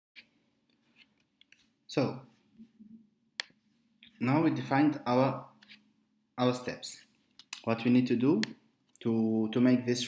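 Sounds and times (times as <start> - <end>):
man speaking: 1.9 - 2.4, 4.2 - 5.6, 6.4 - 10.0.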